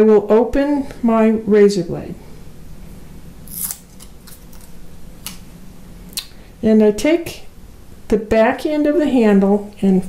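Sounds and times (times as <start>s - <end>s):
razor blade scraping from paper sleeve: 3.5s - 4.7s.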